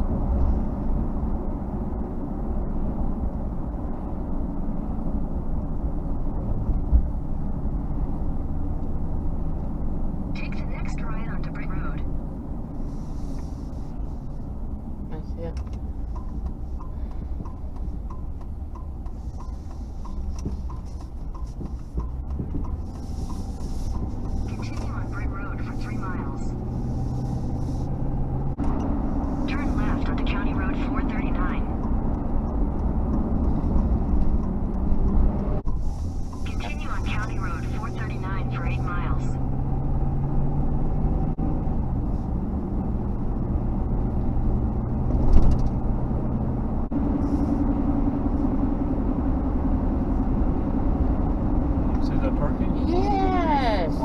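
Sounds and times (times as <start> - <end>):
car cabin road and engine noise: 0.0 - 54.0.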